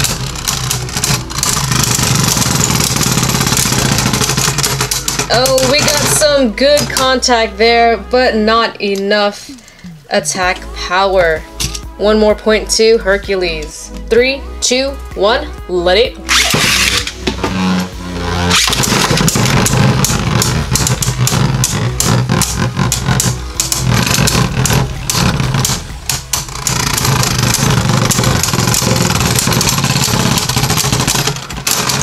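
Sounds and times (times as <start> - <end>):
spinning tops clashing and clicking: 0.0 - 7.2, 18.5 - 32.0
spinning tops whirring and scraping: 0.0 - 7.8, 16.2 - 32.0.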